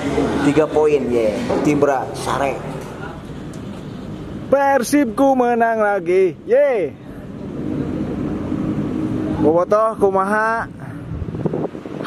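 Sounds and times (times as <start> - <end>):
vehicle engine running: 5.6 - 12.0.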